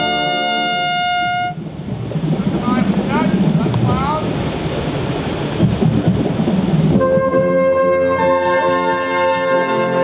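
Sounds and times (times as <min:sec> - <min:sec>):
brass hornline holding a chord: 0:00.0 - 0:01.6, 0:07.0 - 0:10.0.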